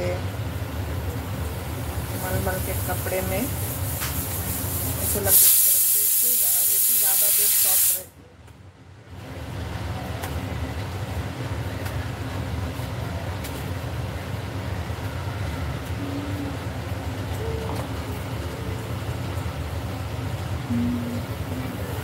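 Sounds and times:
steady low rumble: 19.6 - 22.0
brief faint tones: 20.7 - 22.0.

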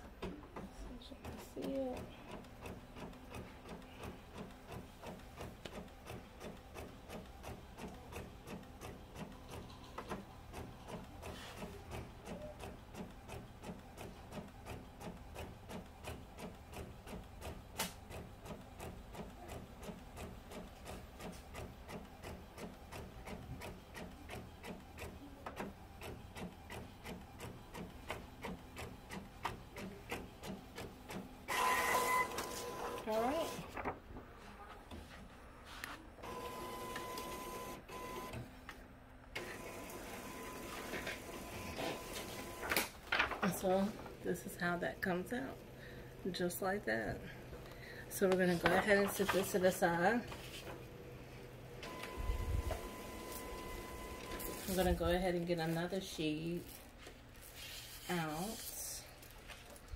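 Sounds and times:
printer whirring with whine: 0.0 - 34.0, 36.2 - 38.5, 39.4 - 55.4.

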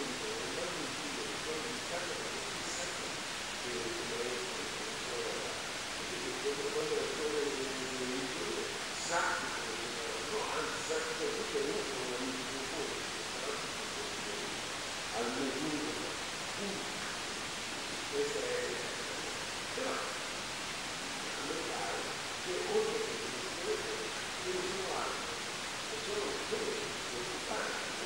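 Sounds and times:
faint muffled speech: 0.0 - 20.3, 21.0 - 28.0
steady recording hiss: 0.0 - 28.0.

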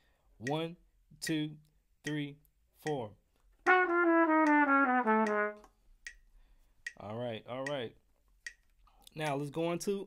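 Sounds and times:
trumpet fast descending run: 3.7 - 5.6.

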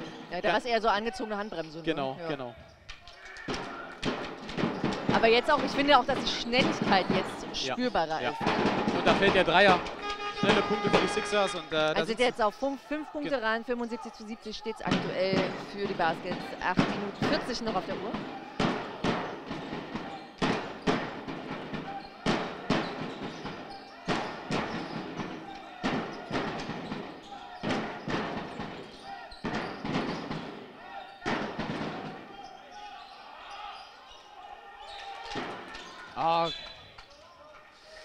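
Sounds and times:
voices in a hall: 0.0 - 38.0
basketball bouncing on wooden court: 3.4 - 11.0, 14.9 - 32.4.

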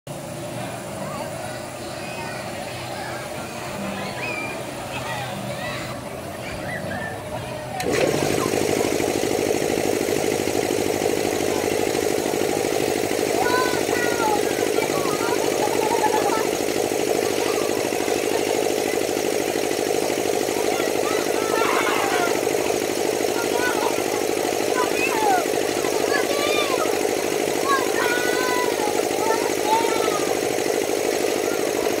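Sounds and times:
ride motor humming: 0.1 - 32.0
voices calling out: 0.1 - 32.0.

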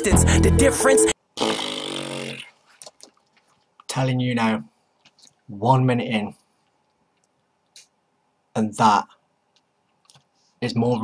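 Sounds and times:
rap music: 0.0 - 1.2.

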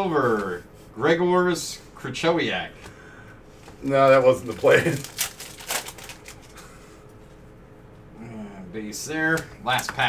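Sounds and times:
foil wrapper crinkling: 3.8 - 6.6.

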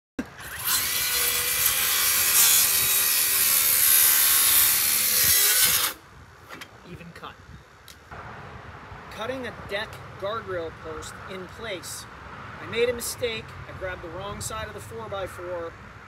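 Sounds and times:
circular saw cutting wood: 0.2 - 6.0.

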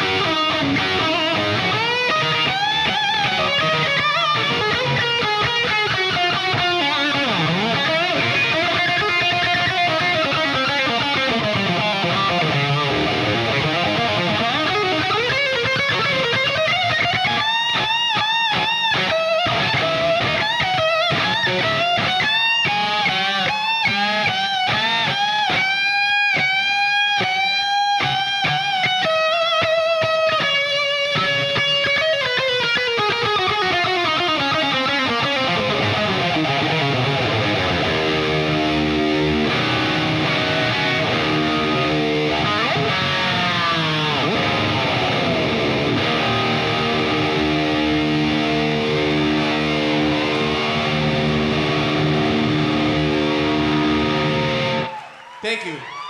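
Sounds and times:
electric guitar solo: 0.0 - 56.0.

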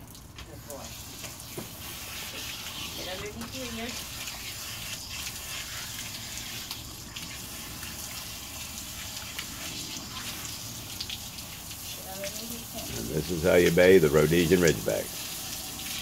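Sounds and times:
hose water spraying: 0.0 - 16.0.

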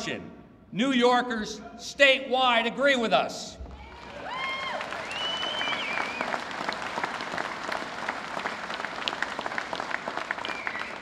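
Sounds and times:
audience applause: 3.8 - 11.0.

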